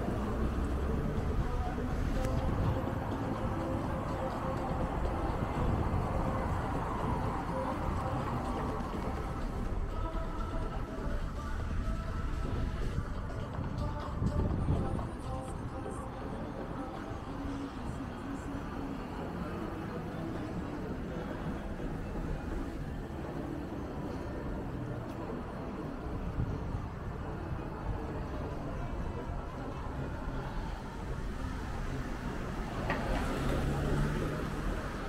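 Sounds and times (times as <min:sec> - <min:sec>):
cars driving past: 0:00.0 - 0:10.2, 0:15.8 - 0:35.0.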